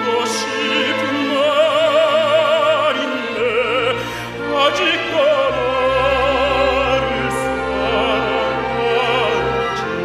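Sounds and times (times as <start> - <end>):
orchestral accompaniment: 0.0 - 10.0
person singing with wide vibrato: 0.0 - 10.0.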